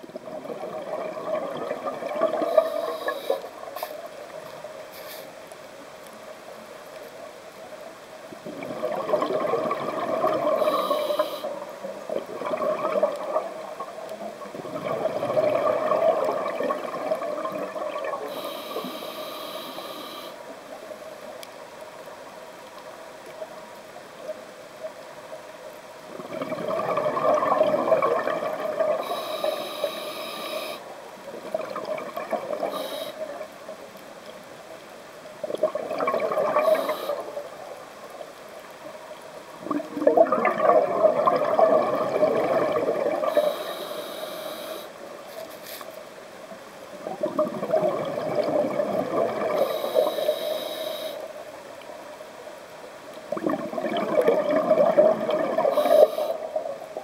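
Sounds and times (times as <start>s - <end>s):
bubbles gurgling underwater: 0.0s - 3.7s, 8.4s - 10.9s, 12.0s - 18.4s, 26.1s - 29.2s, 31.3s - 32.8s, 35.4s - 37.6s, 39.5s - 43.5s, 47.0s - 49.9s, 53.3s - 57.0s
diver breathing through regulator: 2.4s - 4.1s, 10.5s - 11.6s, 18.3s - 20.4s, 29.0s - 30.8s, 43.2s - 45.9s, 49.6s - 51.3s, 55.7s - 56.4s
sharp high hiss: 2.5s - 4.2s, 4.9s - 5.4s, 10.6s - 11.6s, 18.3s - 20.4s, 29.0s - 30.9s, 32.7s - 33.2s, 43.3s - 46.0s, 49.6s - 51.3s, 55.8s - 56.5s.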